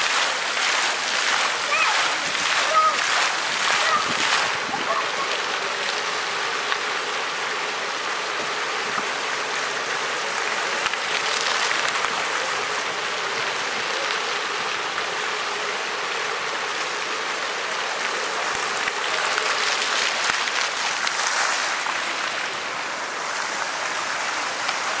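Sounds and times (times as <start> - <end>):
fountain water splashing: 0.0 - 25.0.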